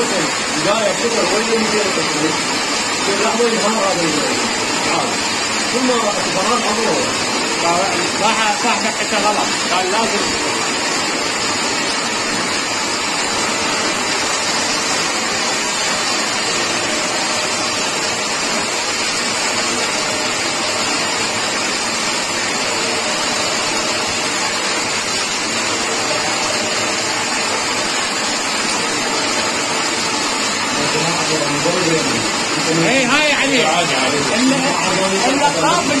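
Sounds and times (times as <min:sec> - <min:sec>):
coil winding machine whirring: 0:00.0 - 0:36.0.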